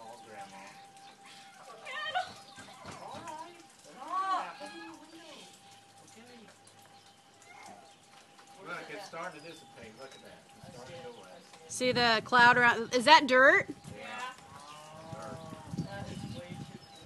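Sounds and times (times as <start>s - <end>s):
indistinct voices talking quietly: 0.0s - 17.0s.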